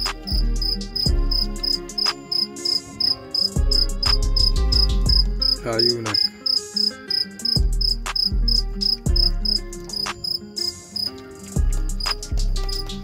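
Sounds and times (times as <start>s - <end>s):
crickets chirping: 0.0s - 13.0s
music with deep bass beats: 0.0s - 13.0s.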